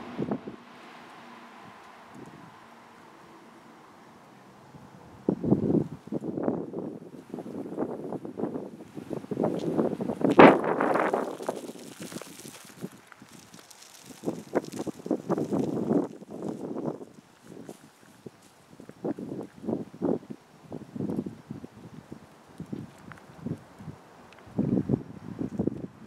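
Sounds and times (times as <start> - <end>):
wind buffeting microphone: 0.0 - 0.8, 1.5 - 2.7, 4.7 - 26.0
crunching on gravel: 8.9 - 20.2, 22.1 - 24.6.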